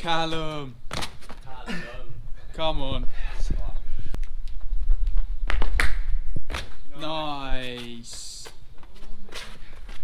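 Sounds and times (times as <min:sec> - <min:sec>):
footsteps on pavement: 0:04.0 - 0:10.0.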